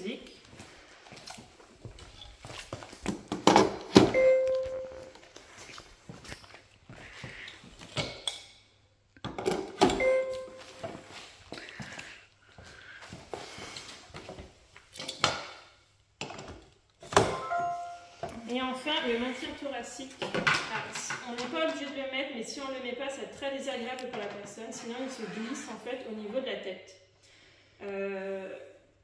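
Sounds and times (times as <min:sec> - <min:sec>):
short electronic chime: 0:17.3 - 0:18.2.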